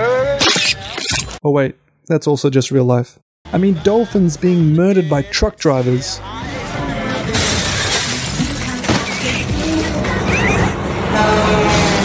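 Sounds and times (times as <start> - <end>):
glass shattering: 0.4 - 1.4, 7.3 - 9.5.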